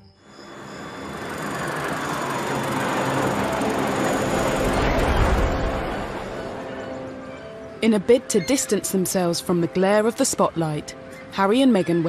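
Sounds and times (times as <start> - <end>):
rushing rumbling transition effect: 4.3 - 6.7.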